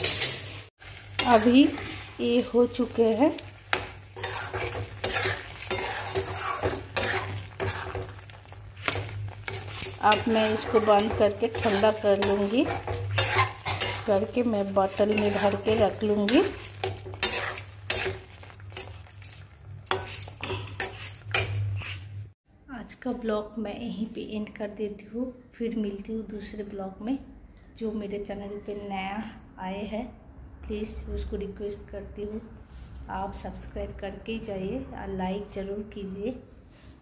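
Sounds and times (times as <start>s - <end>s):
paste sizzling in oil: 0.0s - 22.3s
metal spatula scraping a pan: 0.0s - 22.4s.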